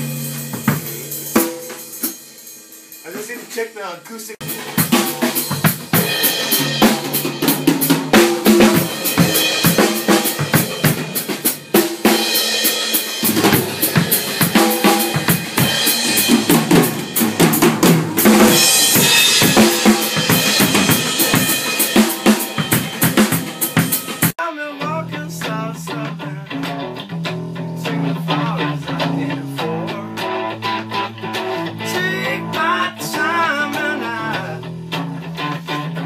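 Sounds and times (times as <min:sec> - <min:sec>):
drum kit groove: 0:00.0 - 0:36.0.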